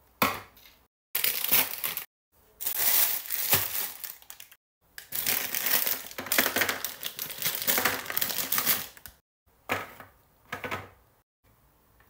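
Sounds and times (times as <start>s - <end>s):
plastic sweet packet crinkling: 1.2s - 9.2s.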